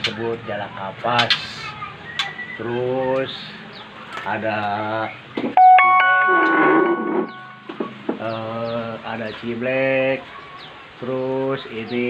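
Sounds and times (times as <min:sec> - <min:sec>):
bell-like ringing tone: 0:05.6 - 0:07.7.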